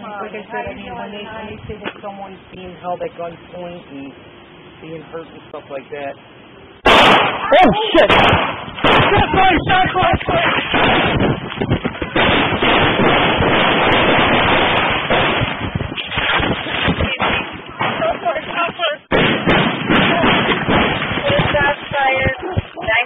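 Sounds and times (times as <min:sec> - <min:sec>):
voices: 0:00.0 - 0:10.7, 0:16.7 - 0:19.1, 0:19.9 - 0:23.0
gunshots: 0:06.8 - 0:18.2, 0:19.1 - 0:22.3.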